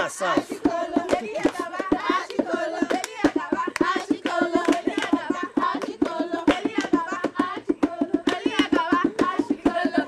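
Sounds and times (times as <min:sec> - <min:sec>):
voices singing: 0:00.0 - 0:10.0
hand claps: 0:01.0 - 0:07.6, 0:08.2 - 0:09.5.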